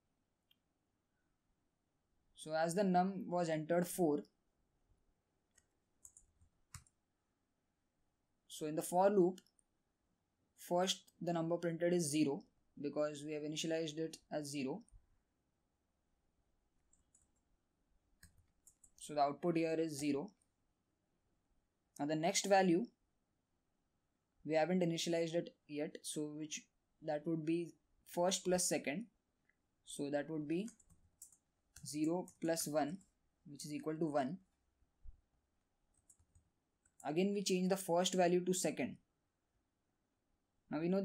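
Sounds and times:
faint keyboard clicks: 0:05.5 - 0:07.0, 0:18.2 - 0:19.0, 0:30.6 - 0:32.5.

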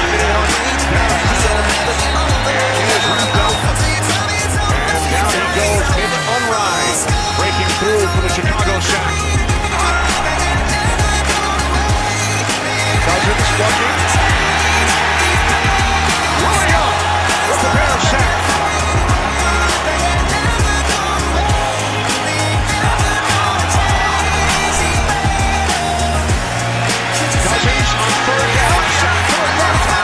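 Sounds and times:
backing music with bass beat: 0:00.0 - 0:30.0.

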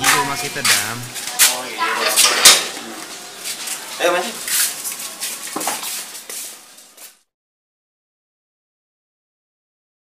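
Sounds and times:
scuffing footsteps: 0:00.0 - 0:00.9.

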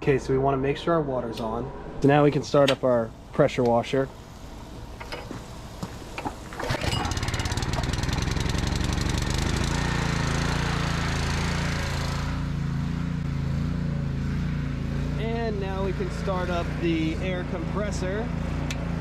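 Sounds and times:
small engine running: 0:03.9 - 0:19.0.

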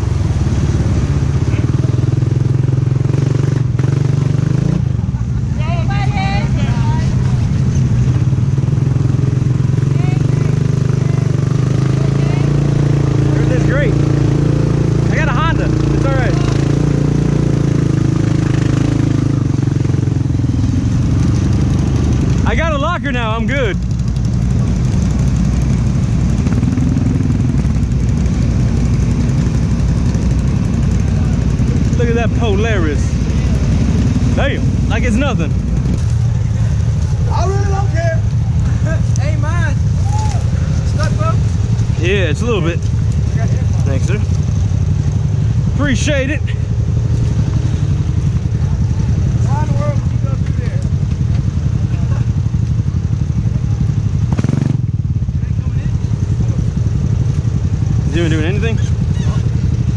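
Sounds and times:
engine running low hum: 0:00.0 - 0:59.9
people shouting: 0:39.9 - 0:40.8.

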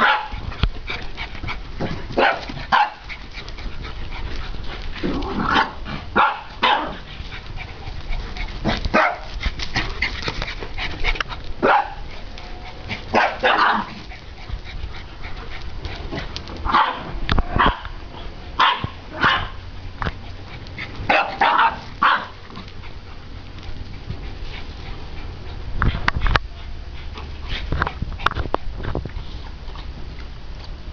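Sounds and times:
dogs barking and yipping: 0:00.0 - 0:28.5.

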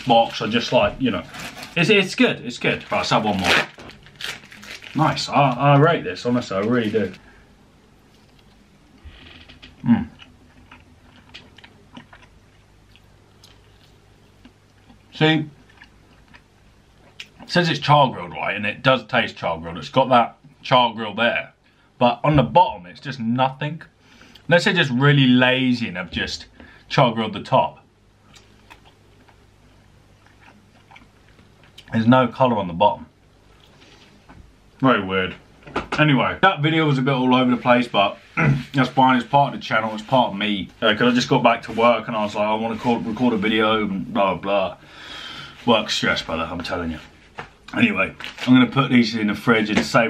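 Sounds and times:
person chewing: 0:09.6 - 0:17.5, 0:28.3 - 0:31.9
person humming mm: 0:09.8 - 0:10.2.

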